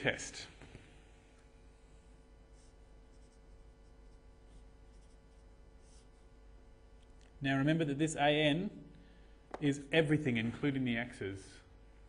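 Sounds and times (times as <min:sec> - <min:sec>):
steady low hum: 0:00.0 - 0:12.0
pen scratching on paper: 0:02.5 - 0:06.3.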